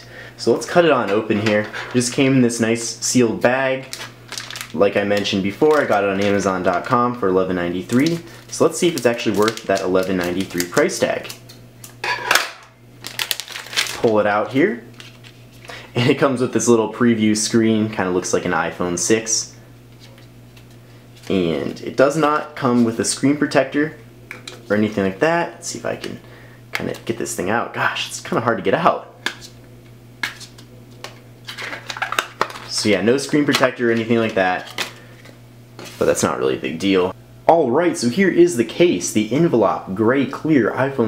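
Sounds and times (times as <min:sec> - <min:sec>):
plastic bag crinkling: 0:03.8 - 0:07.2, 0:07.8 - 0:11.3, 0:13.0 - 0:15.8, 0:31.4 - 0:33.0.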